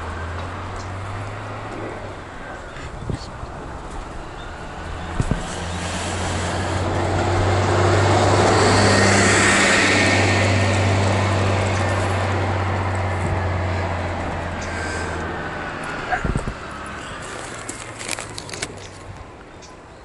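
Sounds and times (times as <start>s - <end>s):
bus passing: 0.0s - 20.0s.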